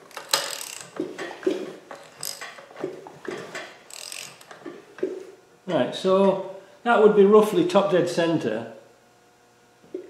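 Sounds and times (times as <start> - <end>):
ratchet wrench clicking: 0.2 - 0.9, 2.0 - 2.6, 3.9 - 4.5.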